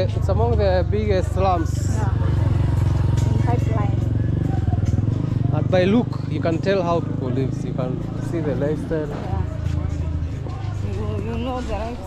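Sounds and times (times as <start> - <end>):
motorcycle engine passing: 0.0 - 12.0.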